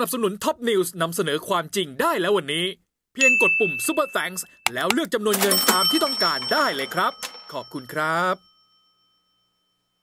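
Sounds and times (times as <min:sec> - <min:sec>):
man speaking: 0:04.7 - 0:07.1
faint high ringing tone: 0:05.7 - 0:10.0.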